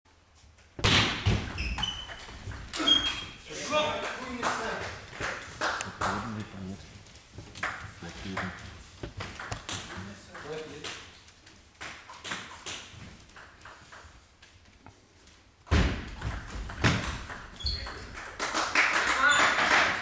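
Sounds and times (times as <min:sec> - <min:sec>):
table tennis ball bouncing: 0:00.8 - 0:06.0, 0:07.6 - 0:11.2, 0:11.8 - 0:14.3, 0:15.7 - 0:18.4
people talking: 0:02.8 - 0:05.0, 0:06.0 - 0:06.8.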